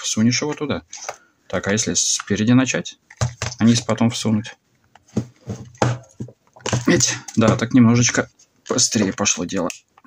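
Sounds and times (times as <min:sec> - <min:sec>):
rubber case scuffing and rubbing: 0:05.0 - 0:07.7
man grunting and muttering: 0:06.8 - 0:07.4.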